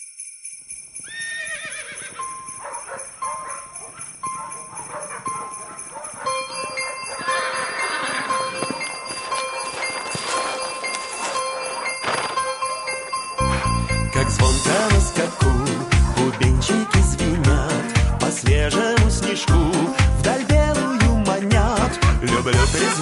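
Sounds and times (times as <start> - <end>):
sleigh bells jingling: 0.0 - 23.0
horse hooves clip-clopping: 0.7 - 13.9
horse whinnying: 1.0 - 2.4, 7.2 - 8.6.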